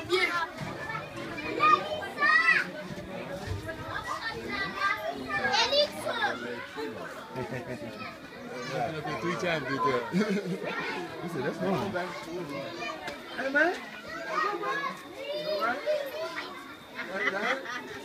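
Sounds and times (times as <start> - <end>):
children chattering and calling out: 0.0 - 18.0.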